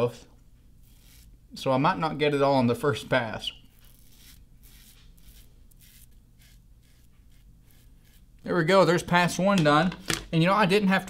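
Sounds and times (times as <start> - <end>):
razor scraping stubble: 0.7 - 1.7, 2.9 - 9.4.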